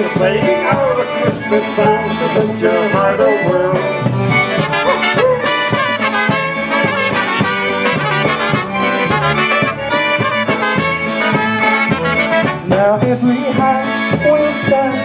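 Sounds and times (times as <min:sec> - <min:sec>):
brass polka band: 0:00.0 - 0:15.0
steady bass accompaniment: 0:00.0 - 0:15.0
trumpets playing melody: 0:04.4 - 0:13.0.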